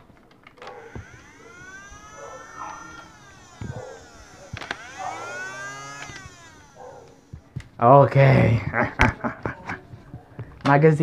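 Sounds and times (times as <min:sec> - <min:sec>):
flywheel motors whining: 0:00.0 - 0:10.6
blaster click: 0:00.6 - 0:07.5.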